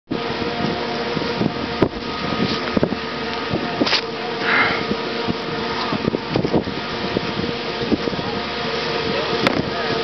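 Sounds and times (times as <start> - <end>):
wind on microphone: 0.1 - 10.0.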